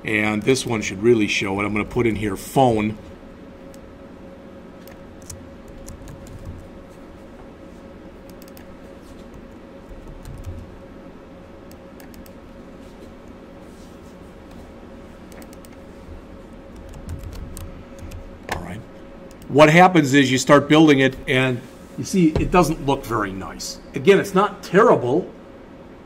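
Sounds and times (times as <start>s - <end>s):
faint steady hum: 0.0s - 26.0s.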